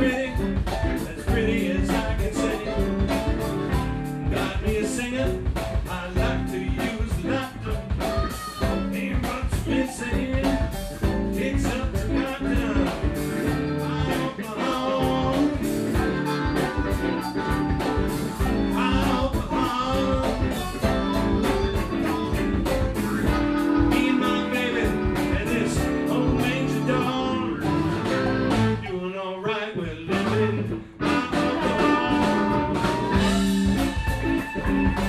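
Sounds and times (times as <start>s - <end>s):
drum kit: 0.0s - 28.8s, 30.1s - 35.0s
keyboard: 0.0s - 28.9s
electric guitar bending lead line: 0.0s - 35.0s.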